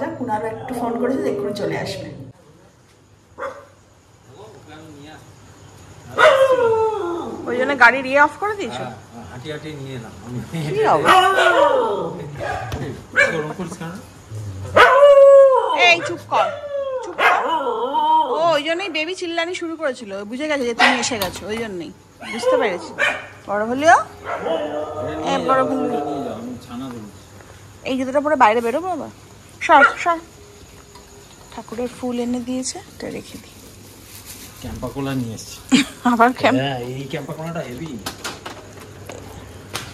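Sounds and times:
dog barking: 3.4s - 3.8s, 6.2s - 6.6s, 11.0s - 13.6s, 14.7s - 17.8s, 20.8s - 21.2s, 22.2s - 23.4s, 24.2s - 25.1s, 29.7s - 30.2s
dog crying: 6.2s - 7.7s, 10.8s - 13.5s, 14.7s - 18.8s, 24.1s - 26.6s.

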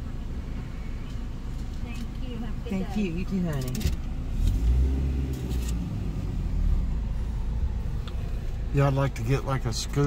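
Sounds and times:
car engine and road rumble: 0.0s - 10.0s.

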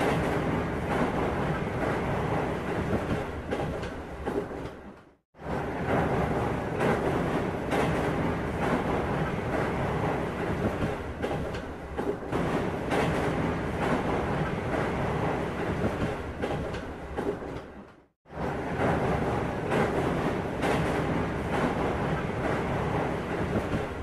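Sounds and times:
train rumbling on rails: 0.0s - 24.0s.

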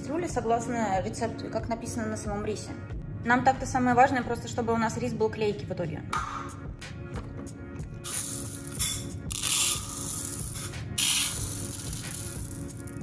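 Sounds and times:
background music: 0.0s - 13.0s
rice pouring into plastic cup: 8.1s - 13.0s.

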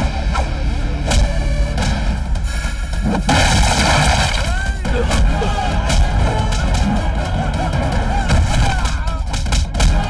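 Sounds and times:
wood breaking: 3.3s - 4.6s.

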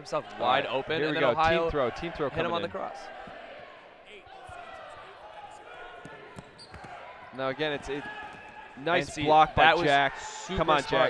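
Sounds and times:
hubbub of players: 0.0s - 11.0s.

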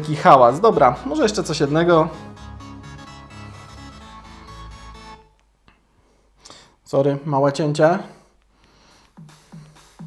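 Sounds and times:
bass-heavy music from speaker: 0.0s - 5.3s.

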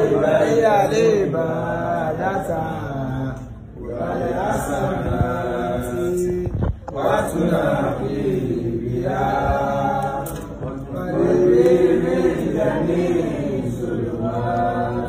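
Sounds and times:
voices chanting melodically: 0.0s - 15.0s.

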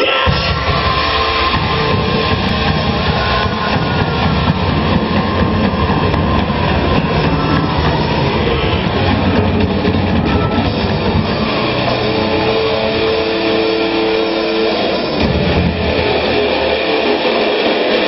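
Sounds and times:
live hard rock band: 0.0s - 18.0s.

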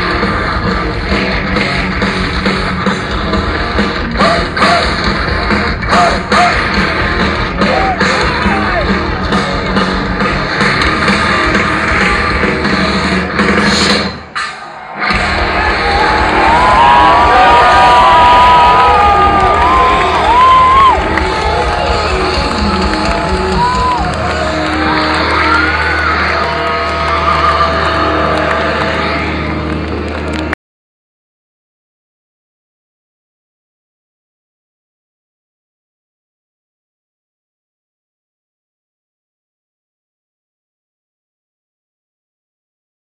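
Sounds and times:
loud live heavy metal music: 0.0s - 30.5s
crowd cheering and yelling: 0.0s - 30.6s
low drone from stage: 0.0s - 30.6s.

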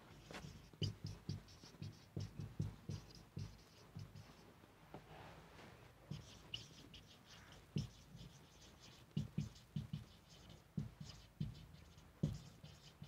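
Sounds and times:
marker scratching on whiteboard: 0.0s - 4.4s, 6.1s - 13.0s
marker tip tapping board: 0.2s - 4.4s, 6.1s - 13.0s.

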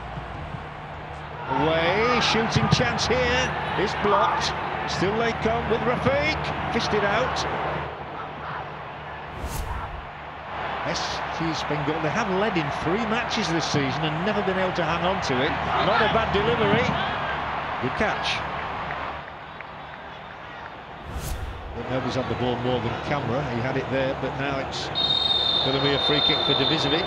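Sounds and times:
football match ambience: 0.0s - 27.0s
sports commentary: 1.4s - 7.7s, 10.8s - 17.2s, 17.8s - 18.5s, 21.0s - 27.0s
whoosh with low rumble: 9.3s - 10.1s, 21.0s - 21.9s.

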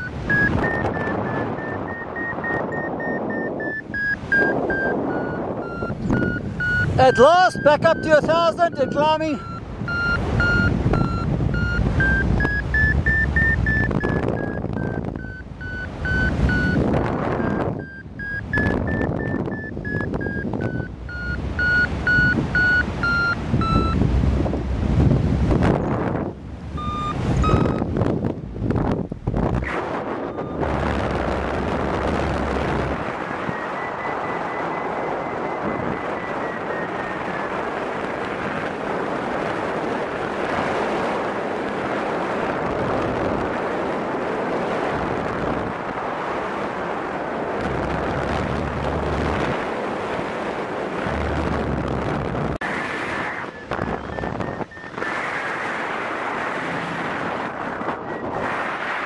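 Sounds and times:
variometer beeping: 0.0s - 24.1s, 26.7s - 40.0s, 51.0s - 56.6s, 57.4s - 58.8s
wind noise on microphone: 0.0s - 59.0s.

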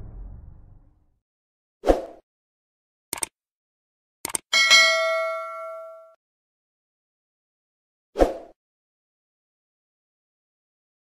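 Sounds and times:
double mouse click: 3.1s - 3.3s, 4.2s - 4.4s
notification bell ding: 4.6s - 6.2s.

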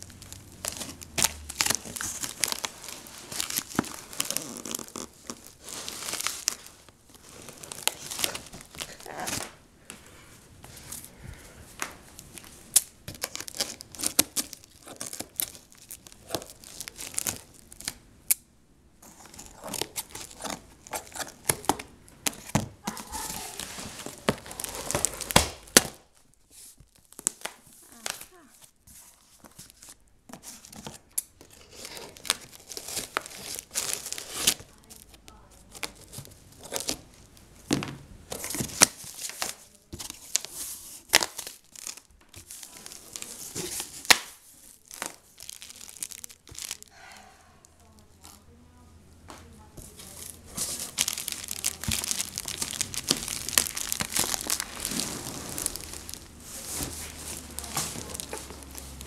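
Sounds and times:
packing tape ripping: 0.0s - 9.6s, 12.4s - 18.0s, 19.1s - 26.1s, 30.5s - 35.2s, 38.3s - 47.0s, 50.0s - 59.0s
plastic wrap crinkling: 0.0s - 18.1s, 19.0s - 37.5s, 38.3s - 48.6s, 49.5s - 59.0s
cardboard flaps scraping: 50.5s - 59.0s.

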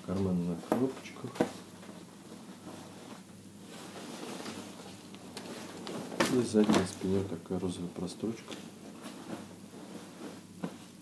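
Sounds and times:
fabric rustling: 0.2s - 7.4s, 8.2s - 11.0s.

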